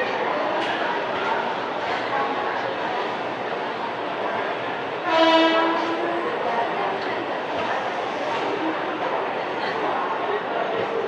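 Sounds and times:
train horn: 0:05.0 - 0:06.0.

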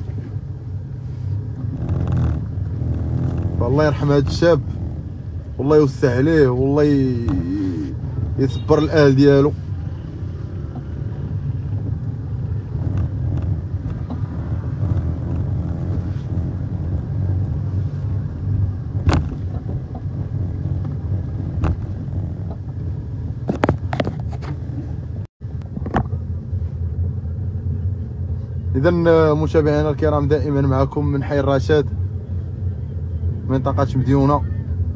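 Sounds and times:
street rumble: 0:00.0 - 0:34.9.

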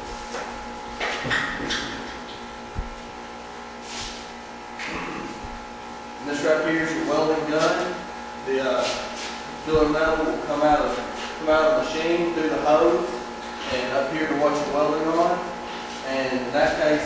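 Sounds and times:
steady hum: 0:00.0 - 0:17.0
man speaking indistinctly: 0:06.2 - 0:17.0
handling knocks: 0:09.7 - 0:10.9.

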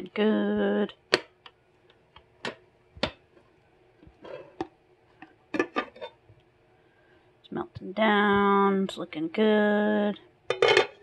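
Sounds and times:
glass lids clinking on crocks: 0:10.5 - 0:11.0.

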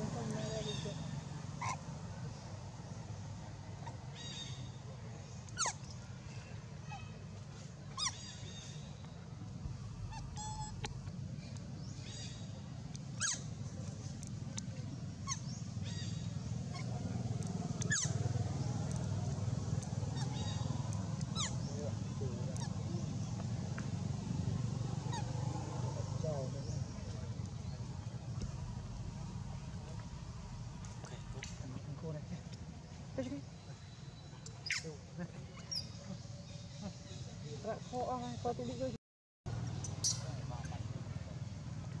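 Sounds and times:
steady low hum: 0:00.0 - 0:37.6
sharp animal calls: 0:01.6 - 0:01.9, 0:09.9 - 0:11.1, 0:13.2 - 0:13.6, 0:17.7 - 0:18.8, 0:19.7 - 0:23.3
steady low rumble: 0:08.4 - 0:34.6.

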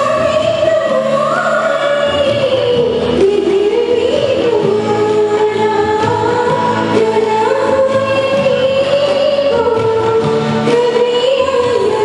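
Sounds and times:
instrumental accompaniment: 0:00.0 - 0:12.0
woman singing into a microphone: 0:00.0 - 0:12.0.

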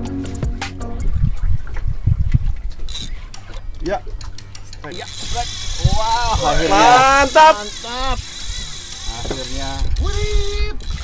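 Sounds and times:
low thumps: 0:00.0 - 0:02.6
music: 0:00.0 - 0:11.0
fishing reel drag screaming: 0:02.9 - 0:03.3, 0:04.9 - 0:11.0.

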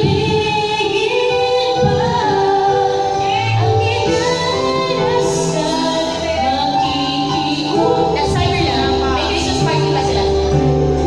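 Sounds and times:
recorded backing track: 0:00.0 - 0:11.0
woman singing karaoke: 0:00.0 - 0:11.0.

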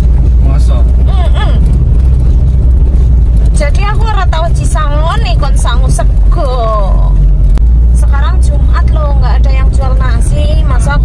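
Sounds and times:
car interior rumble: 0:00.0 - 0:11.0
people talking: 0:00.4 - 0:01.6, 0:03.6 - 0:07.2, 0:08.0 - 0:11.0.

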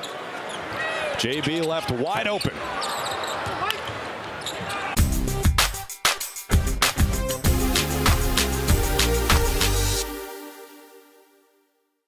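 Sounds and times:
basketball arena ambience: 0:00.0 - 0:08.5
music with heavy beat: 0:05.0 - 0:10.4.

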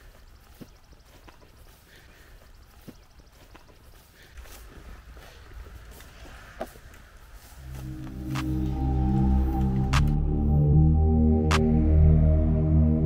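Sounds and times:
footsteps through tall weeds: 0:00.0 - 0:09.9.

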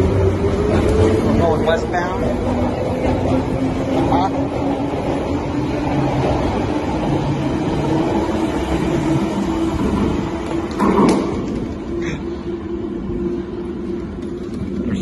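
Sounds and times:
underground train rumbling: 0:00.0 - 0:15.0.

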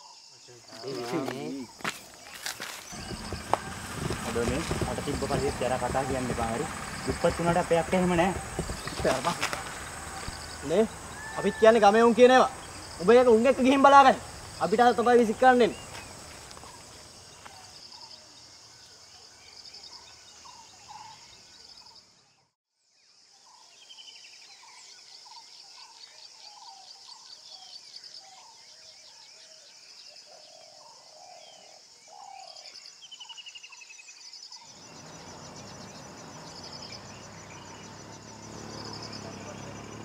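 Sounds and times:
high insect buzz: 0:00.6 - 0:19.0, 0:34.7 - 0:40.0
bird chirps and trills: 0:02.5 - 0:18.1, 0:34.8 - 0:40.0.

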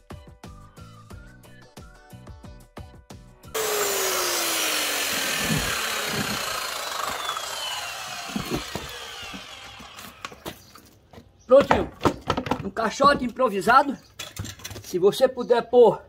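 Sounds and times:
background music: 0:00.0 - 0:03.6
circular saw spinning down: 0:03.6 - 0:10.4
knocks of objects handled: 0:10.3 - 0:13.4.

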